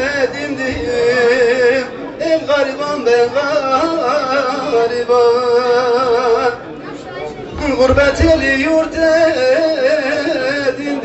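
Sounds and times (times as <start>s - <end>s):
man singing folk song: 0.0s - 6.6s, 7.6s - 11.0s
people chattering: 0.0s - 11.0s
low thuds: 7.5s - 9.6s.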